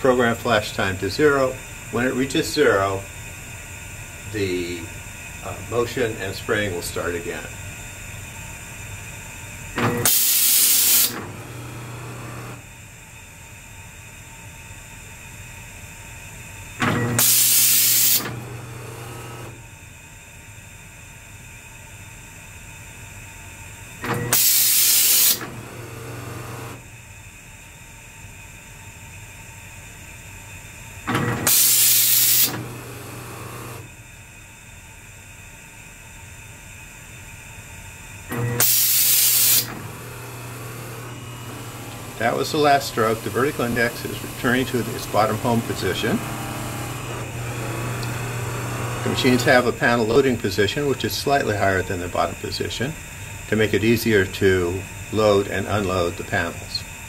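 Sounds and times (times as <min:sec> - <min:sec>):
machine hum: 0:00.0 - 0:13.0, 0:16.7 - 0:19.7, 0:24.0 - 0:26.9, 0:31.0 - 0:34.0, 0:38.2 - 0:57.0
spray gun air hiss: 0:09.9 - 0:11.3, 0:17.2 - 0:18.4, 0:24.3 - 0:25.5, 0:31.4 - 0:32.7, 0:38.6 - 0:39.9, 0:41.5 - 0:46.9.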